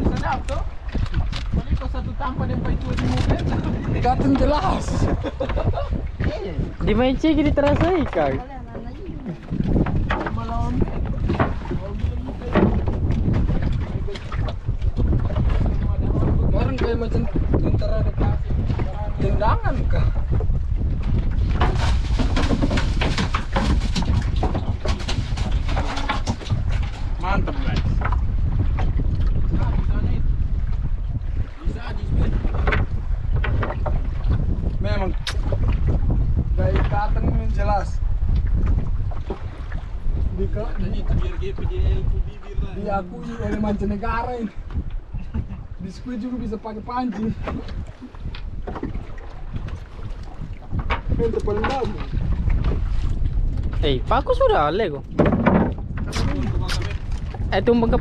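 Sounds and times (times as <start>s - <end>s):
wind buffeting microphone: 0.0s - 58.0s
people talking: 15.9s - 20.1s, 40.4s - 44.5s, 56.1s - 57.0s.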